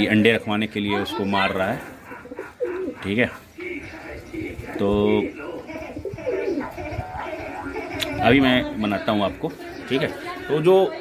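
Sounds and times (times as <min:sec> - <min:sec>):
pigeons cooing: 0:00.8 - 0:10.4.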